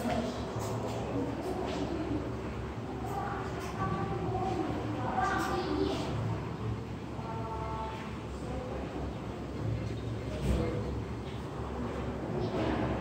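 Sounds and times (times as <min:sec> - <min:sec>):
faint distant voices: 0:00.0 - 0:13.0
low room hum: 0:00.0 - 0:13.0.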